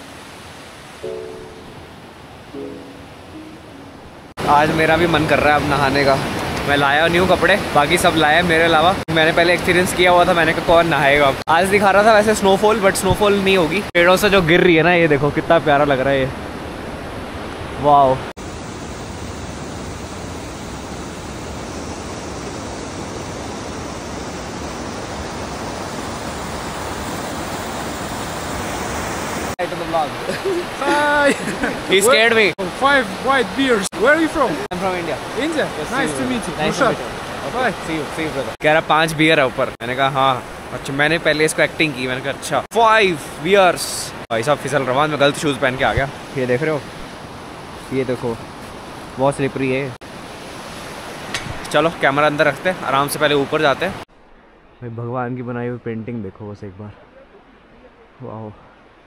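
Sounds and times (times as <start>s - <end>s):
soft background music chord: 1.0s - 4.2s
stream rushing over rocks: 4.1s - 15.0s, 15.7s - 54.1s.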